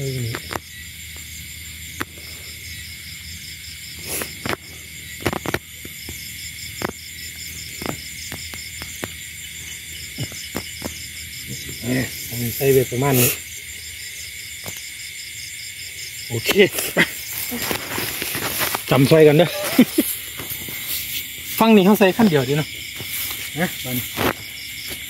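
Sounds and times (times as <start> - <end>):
crickets and insects trilling: 0.0 - 25.0
grass rustling and clicking: 0.1 - 1.3, 4.0 - 25.0.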